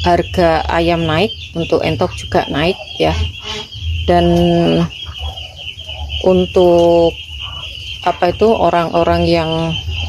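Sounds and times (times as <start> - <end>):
high-pitched insect drone: 0.0 - 10.0.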